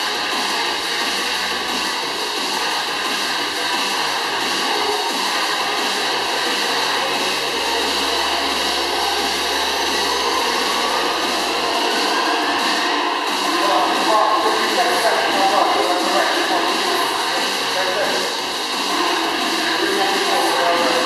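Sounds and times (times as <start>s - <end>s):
music playing: 0.0s - 21.0s
steady whirring: 6.1s - 12.5s.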